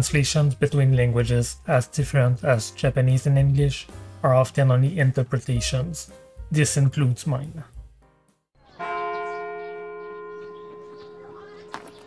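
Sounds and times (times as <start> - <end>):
church bell ringing: 8.6 - 12.0.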